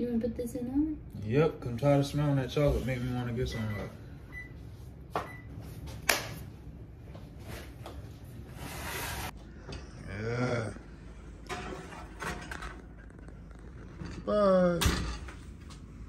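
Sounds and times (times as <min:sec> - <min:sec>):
metal pan set on oven rack: 0:11.5 - 0:12.8.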